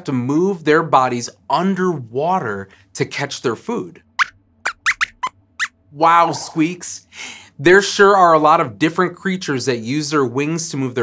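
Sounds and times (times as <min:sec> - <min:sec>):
high-pitched puppet squeaks: 0:04.2 - 0:05.8.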